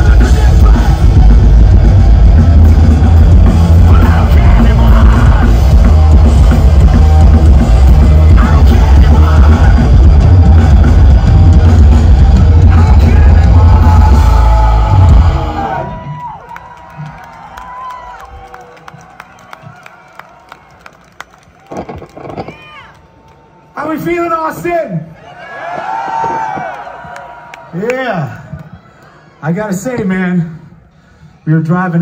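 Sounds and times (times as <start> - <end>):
punk rock band playing: 0.0 - 15.9
crowd cheering: 0.0 - 30.0.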